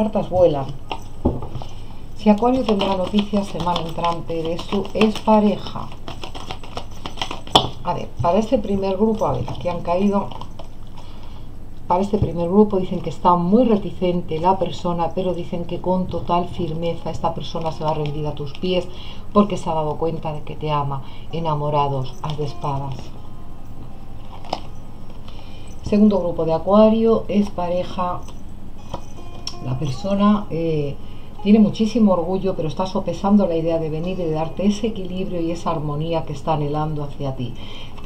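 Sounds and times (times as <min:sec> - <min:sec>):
steady low hum: 0:00.0 - 0:38.0
cards clicking and rustling: 0:00.8 - 0:07.8, 0:09.4 - 0:11.4, 0:17.5 - 0:18.7, 0:24.2 - 0:25.3.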